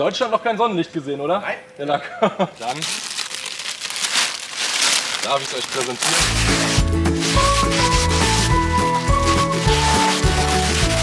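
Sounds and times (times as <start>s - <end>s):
plastic wrapping being torn: 2.6s - 11.0s
background music: 6.0s - 11.0s.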